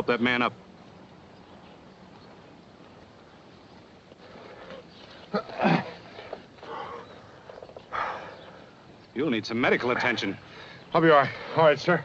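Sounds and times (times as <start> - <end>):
film soundtrack hiss: 0.0 - 12.0.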